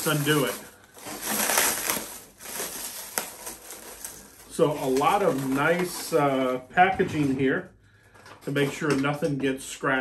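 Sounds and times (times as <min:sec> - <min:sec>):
plastic packaging crinkling: 0:00.0 - 0:06.7.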